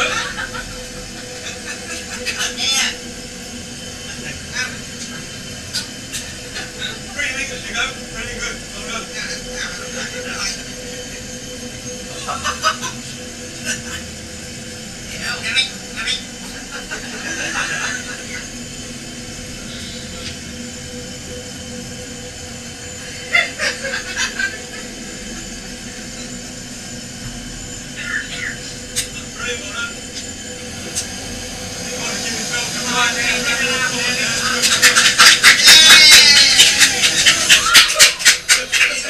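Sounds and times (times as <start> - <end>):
air hissing and humming: 0.0 - 39.0
fast run of sharp sounds: 28.6 - 38.6.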